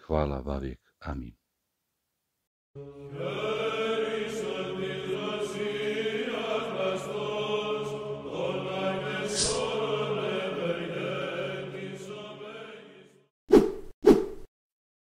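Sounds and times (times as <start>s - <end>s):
chanted choral music: 2.8s - 13.3s.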